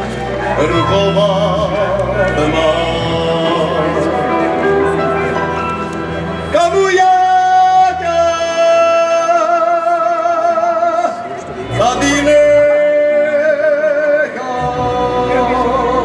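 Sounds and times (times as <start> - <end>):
man singing into a microphone: 0.0 - 5.0, 6.4 - 16.0.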